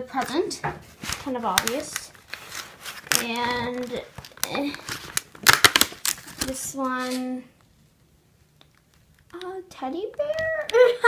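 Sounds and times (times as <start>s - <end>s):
cardboard tearing open: 1.0s - 7.2s
plastic tray crinkling: 1.0s - 7.3s.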